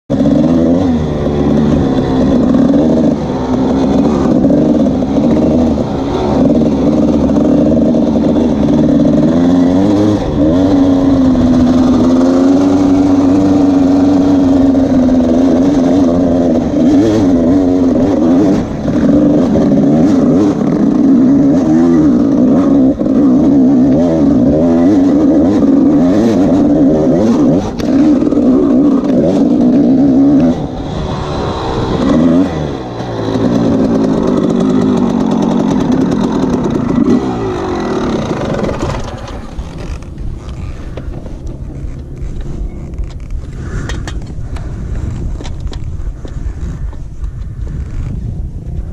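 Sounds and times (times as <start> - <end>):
dirt bike engine revving: 0.1 - 45.4.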